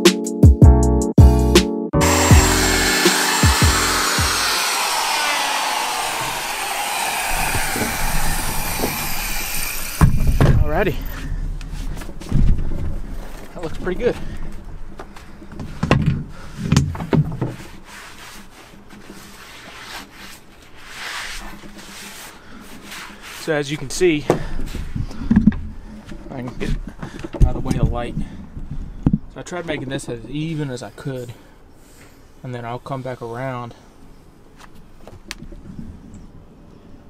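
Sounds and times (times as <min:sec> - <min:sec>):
orbital sander whine winding down: 0:02.0 - 0:10.5.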